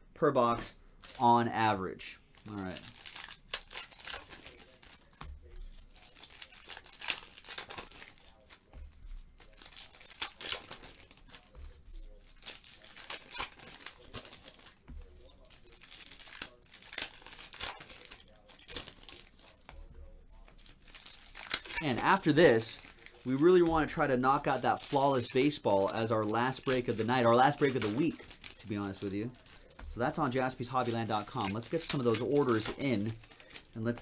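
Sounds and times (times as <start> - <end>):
foil packs ripping and crinkling: 2.3 - 34.0.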